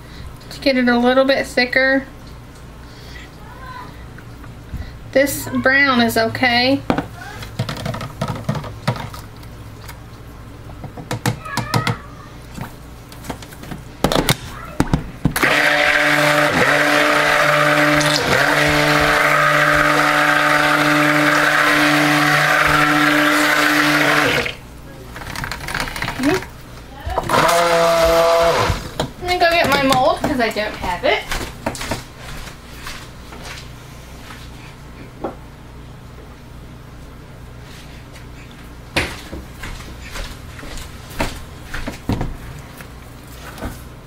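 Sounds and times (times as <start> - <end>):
stick blender motor hum: 15.4 - 24.6, 27.2 - 29.0.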